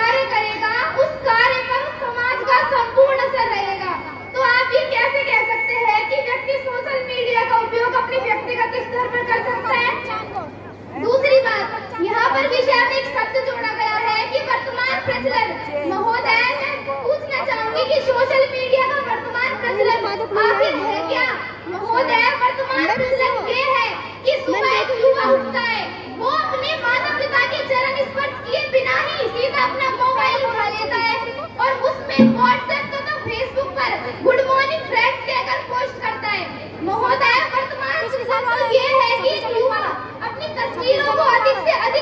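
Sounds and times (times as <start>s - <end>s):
girl speaking over public address: 0.0s - 42.0s.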